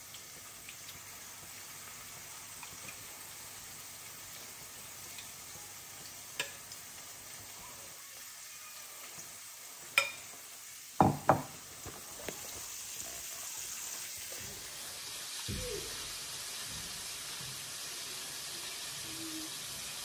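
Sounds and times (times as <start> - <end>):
batter frying in hot oil: 0.0 - 20.0
spoon and bowl knocks: 11.0 - 11.6.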